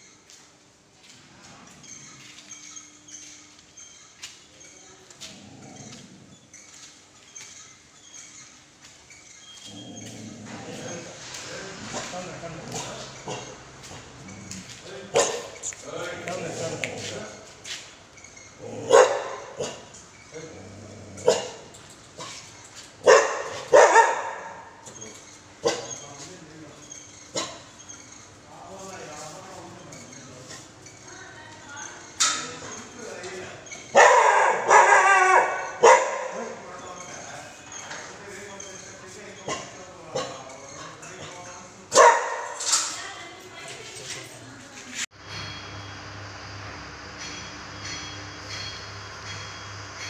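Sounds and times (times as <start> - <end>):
dog barking: 13.3 - 13.6, 15.1 - 15.6, 18.8 - 19.9, 21.2 - 22.4, 23.0 - 24.8, 25.6 - 26.0, 33.9 - 36.6, 41.9 - 42.7.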